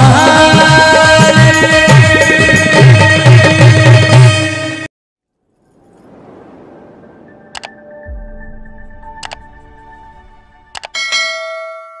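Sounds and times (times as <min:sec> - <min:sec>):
mouse double click: 0:09.2 - 0:09.4
bright bell chime: 0:10.9 - 0:12.0.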